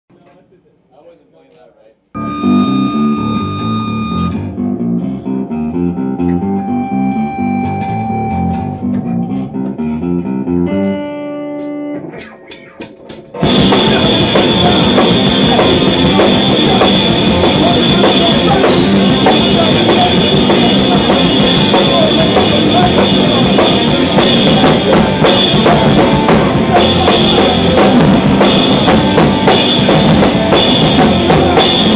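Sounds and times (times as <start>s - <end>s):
electric guitar riff: 2.2s - 31.9s
rock band playing: 2.2s - 31.9s.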